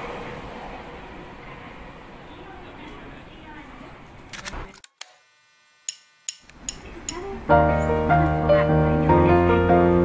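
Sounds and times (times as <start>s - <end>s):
sharp clicks: 4.3s - 5.2s, 5.9s - 7.3s.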